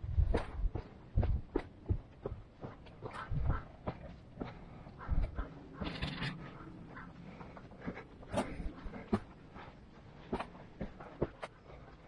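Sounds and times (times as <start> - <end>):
footsteps on rocky trail: 0.0 - 12.0
person breathing: 4.4 - 5.7, 6.4 - 12.0.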